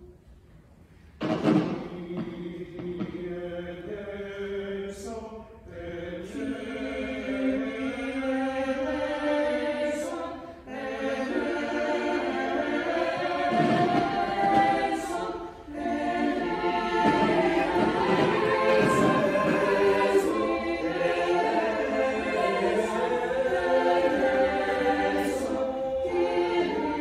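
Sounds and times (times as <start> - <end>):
church choir singing: 1.2 - 27.0.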